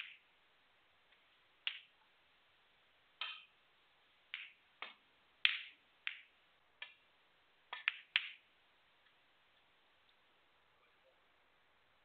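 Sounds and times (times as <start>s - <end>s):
snooker balls clicking: 1.6s - 1.9s, 4.3s - 7.0s, 7.7s - 8.5s.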